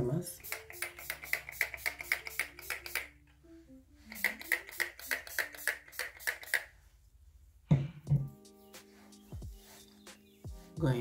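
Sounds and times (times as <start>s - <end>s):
spray bottle puffs: 0.4s - 3.1s, 4.0s - 6.7s.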